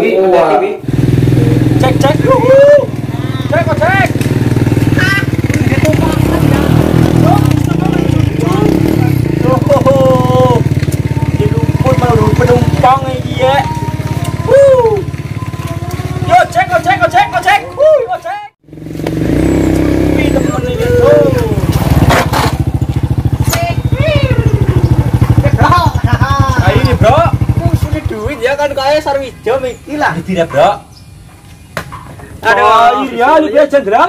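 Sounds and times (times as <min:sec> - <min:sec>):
motorcycle engine rumbling: 0:00.7 - 0:34.0.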